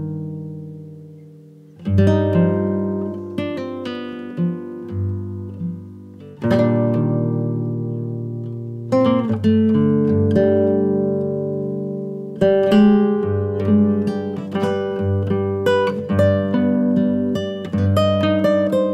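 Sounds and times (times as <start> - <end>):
acoustic guitar chords ringing: 0.0 - 18.9
plucked guitar notes: 0.0 - 18.9.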